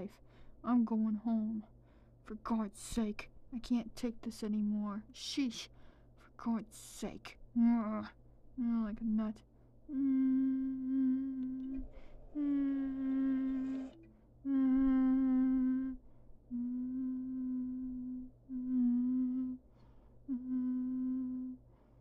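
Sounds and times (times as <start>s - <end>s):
breaths: 0.2s - 0.6s, 1.8s - 2.2s, 5.7s - 6.2s, 11.8s - 13.0s, 19.6s - 20.3s, 21.6s - 22.0s
person humming: 9.9s - 21.6s.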